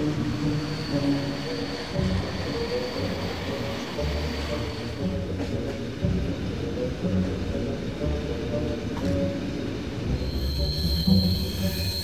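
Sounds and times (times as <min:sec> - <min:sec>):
train wheels squealing on rails: 0:00.0 - 0:05.9, 0:09.0 - 0:12.0
low rumble of moving carriage: 0:00.0 - 0:12.0.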